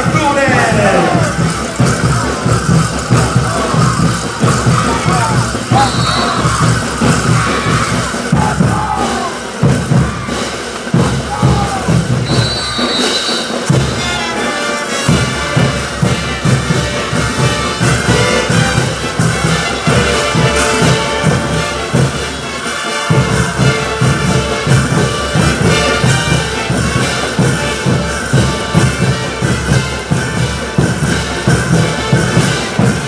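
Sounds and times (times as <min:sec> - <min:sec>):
bass drum beat: 0:00.0 - 0:12.8, 0:15.1 - 0:22.3
shouting voices: 0:00.0 - 0:12.8
brass band playing: 0:00.0 - 0:33.0.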